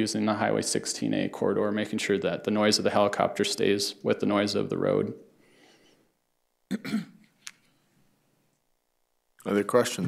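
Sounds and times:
person clearing throat: 6.7 - 7.2.

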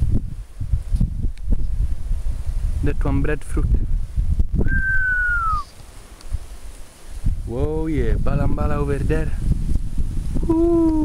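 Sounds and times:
wind rumble on microphone: 0.0 - 11.0
whistled note gliding down: 4.6 - 5.7.

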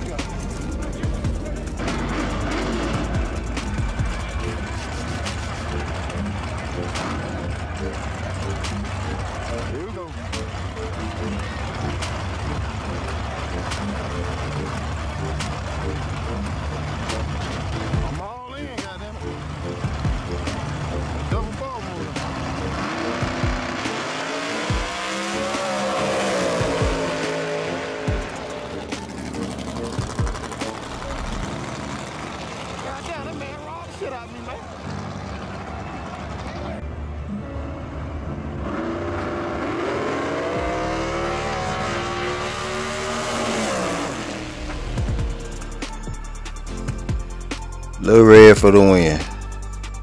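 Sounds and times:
race car engines revving: 0.0 - 50.0
crowd shouting: 3.2 - 10.6, 34.2 - 36.8.

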